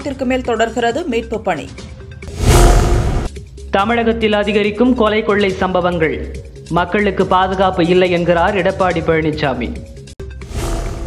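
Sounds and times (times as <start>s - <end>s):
background music: 0.0s - 11.0s
noisy whoosh with low rumble: 2.3s - 3.3s.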